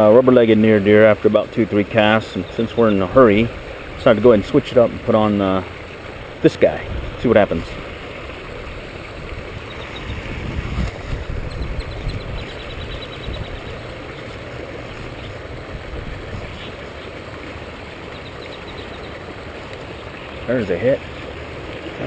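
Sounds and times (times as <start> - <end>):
water pouring over stone spillway: 0.0 - 11.5, 13.6 - 22.0.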